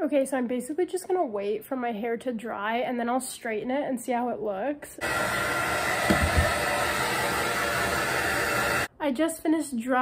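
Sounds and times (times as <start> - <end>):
hair dryer blowing: 5.0 - 8.9.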